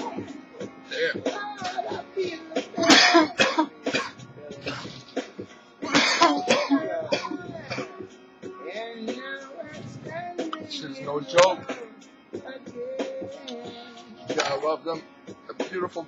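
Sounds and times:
recorded music with singing: 0.0s - 16.0s
man coughing: 2.8s - 5.0s, 5.8s - 8.0s.

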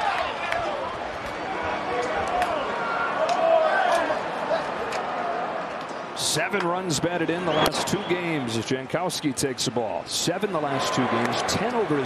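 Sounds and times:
stadium background noise: 0.0s - 12.0s
players shouting excitedly: 1.6s - 5.3s, 10.4s - 12.0s.

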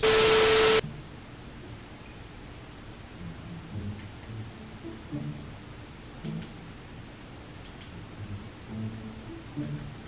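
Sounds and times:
static hiss burst: 0.0s - 0.8s.

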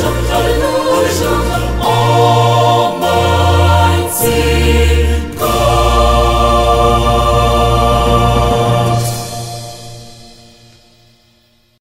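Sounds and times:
choir holding a chord: 0.0s - 10.8s.

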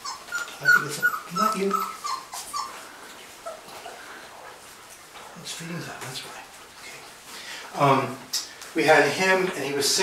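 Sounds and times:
puppies whimpering: 0.0s - 5.2s.

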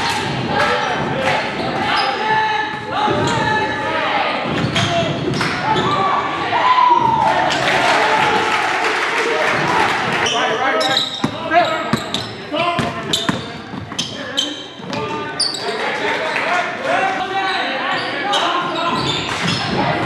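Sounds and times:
players and spectators shouting: 0.0s - 13.4s.

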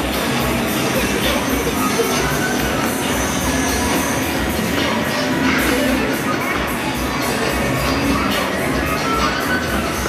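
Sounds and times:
loud music with steady beat: 0.0s - 10.0s
noisy crowd: 0.0s - 10.0s.

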